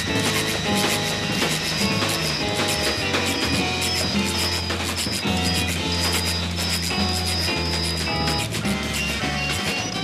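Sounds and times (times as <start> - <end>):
jazz-rock band playing live: 0.0 - 10.0
organ notes: 0.0 - 10.0.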